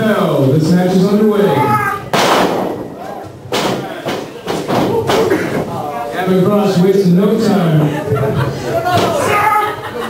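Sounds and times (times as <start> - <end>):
sharp thuds: 2.1 - 2.9
voices shouting: 8.8 - 9.9.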